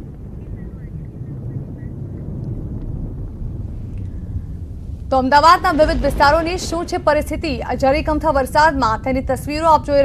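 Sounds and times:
low rumbling outdoor background: 0:00.0 - 0:10.0.

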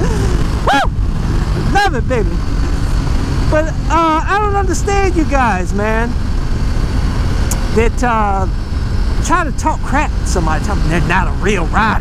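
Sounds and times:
person whooping: 0:00.0 - 0:01.0
person laughing: 0:00.0 - 0:01.6
motorcycle engine running: 0:00.0 - 0:12.0
wind rush: 0:00.0 - 0:12.0.

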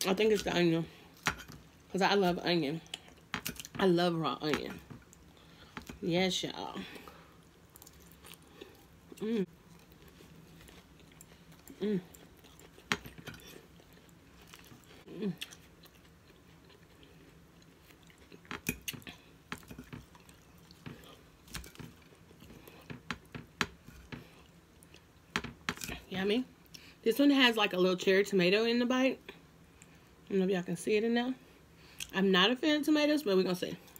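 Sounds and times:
person humming: 0:09.2 - 0:09.5, 0:11.7 - 0:12.2.

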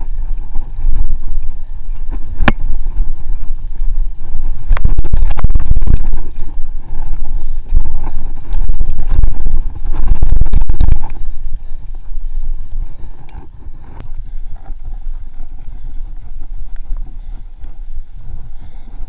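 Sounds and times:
bike tyres rumbling on dirt: 0:00.0 - 0:19.0
wind buffeting microphone: 0:00.0 - 0:19.0.

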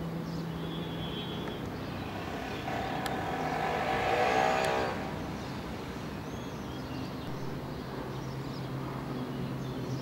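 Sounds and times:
traffic hum: 0:00.0 - 0:09.0
vehicle driving past: 0:01.6 - 0:06.4.

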